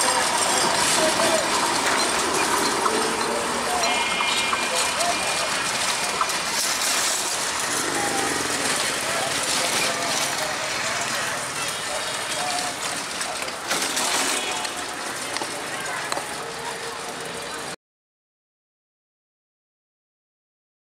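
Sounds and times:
passenger train rumble: 0.0s - 17.8s
people's voices: 0.0s - 17.8s
street noise: 0.0s - 17.8s.

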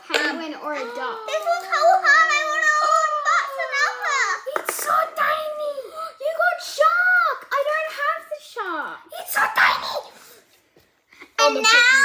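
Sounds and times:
children talking: 0.0s - 10.2s, 11.2s - 12.0s.

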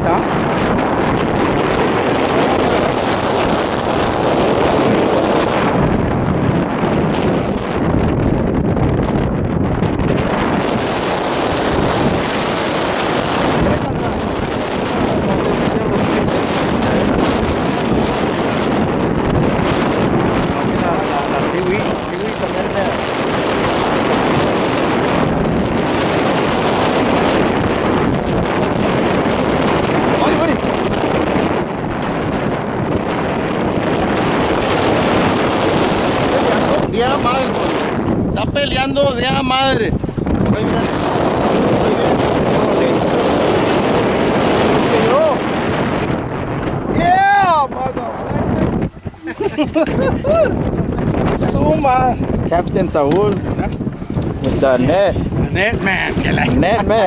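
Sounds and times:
choppy sea waves: 0.0s - 57.0s
wind buffeting microphone: 0.0s - 57.0s.

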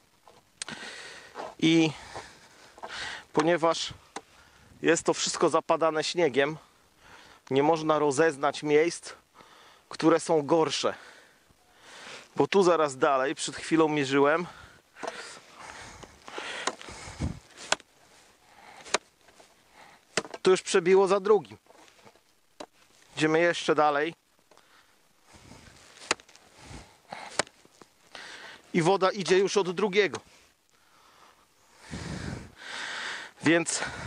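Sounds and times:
man breathing: 0.6s - 4.8s, 6.6s - 7.5s, 9.2s - 9.9s, 10.9s - 12.4s, 14.4s - 20.2s, 24.5s - 28.7s, 30.2s - 34.0s
man speaking: 1.4s - 2.2s, 3.2s - 4.0s, 4.8s - 6.7s, 7.5s - 9.2s, 9.9s - 11.1s, 12.4s - 14.6s, 20.4s - 21.6s, 23.1s - 24.2s, 28.7s - 30.2s, 33.4s - 34.0s
footsteps crunching in snow: 15.2s - 19.7s, 25.2s - 28.1s.

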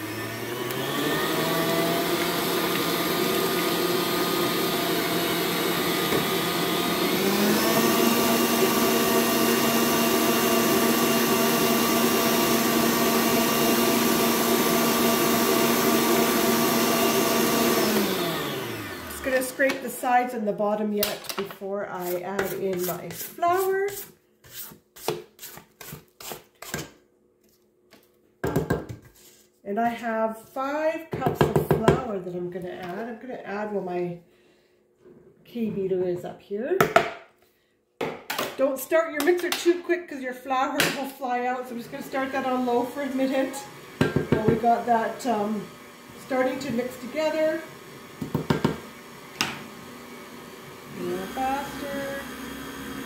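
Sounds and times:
stand mixer running: 0.0s - 19.6s, 41.8s - 53.0s
spatula scraping metal bowl: 21.9s - 26.9s.

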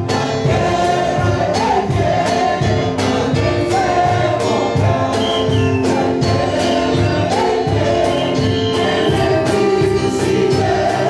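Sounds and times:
music with steady beat: 0.0s - 11.0s
voices singing together: 0.0s - 11.0s.

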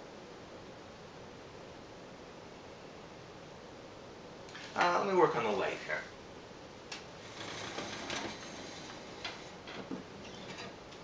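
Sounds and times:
lamp handling clicks and rustles: 6.9s - 11.0s.

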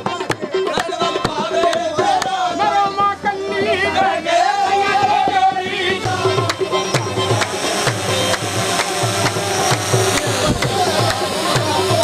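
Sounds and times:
drums beating steady rhythm: 0.0s - 12.0s
loud music: 5.9s - 12.0s.

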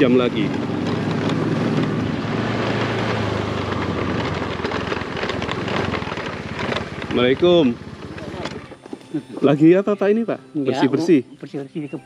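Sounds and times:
motorcycle engine running: 0.0s - 9.9s.

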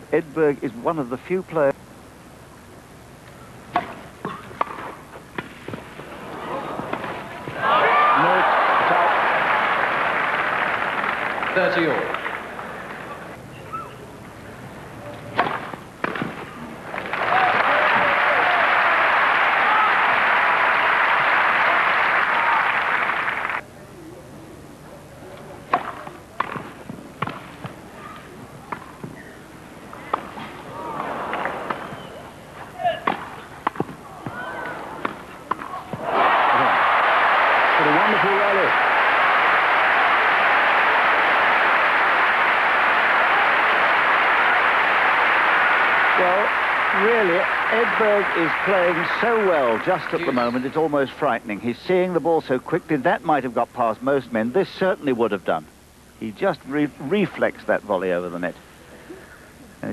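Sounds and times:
rackets hitting tennis balls: 3.7s - 5.9s, 15.2s - 18.1s, 25.7s - 27.8s, 30.0s - 36.1s
crowd applauding: 7.6s - 13.3s, 16.9s - 23.6s, 36.0s - 50.9s.

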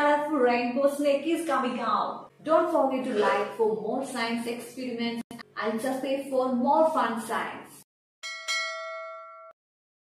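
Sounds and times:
bell chime: 8.2s - 9.6s.

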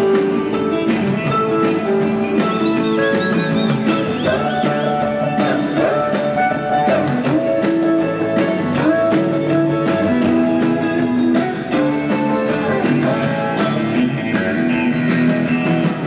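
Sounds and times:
bass guitar: 0.0s - 16.0s
electric guitar lead: 0.0s - 16.0s
steady drum beat: 0.0s - 16.0s.

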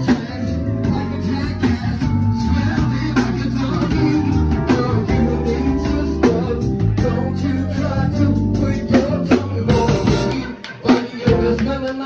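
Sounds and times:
electric bass low notes: 0.0s - 10.6s, 11.2s - 11.9s
drum kit steady rhythm: 0.0s - 12.0s.

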